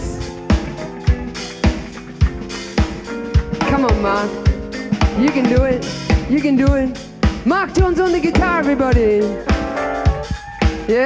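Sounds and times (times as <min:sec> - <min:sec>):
funk band playing: 0:00.0 - 0:11.0
kick and snare drum beat: 0:00.0 - 0:11.0.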